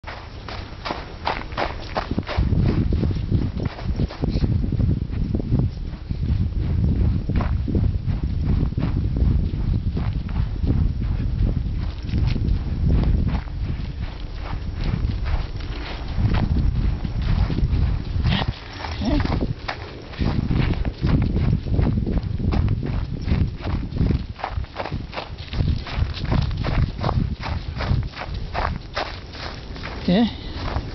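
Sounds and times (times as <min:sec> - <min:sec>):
handheld camera rumble: 0:00.0 - 0:30.9
running footsteps: 0:00.0 - 0:30.9.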